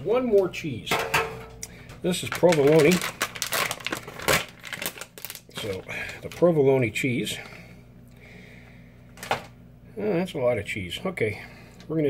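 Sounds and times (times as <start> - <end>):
plastic bag crinkling: 2.0 - 6.8.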